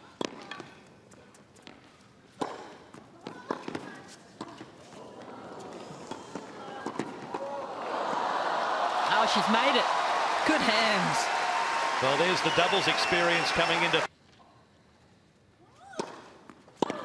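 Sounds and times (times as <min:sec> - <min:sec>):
tennis ball hit by racquets: 0:02.4 - 0:02.8
crowd noise: 0:05.5 - 0:14.1.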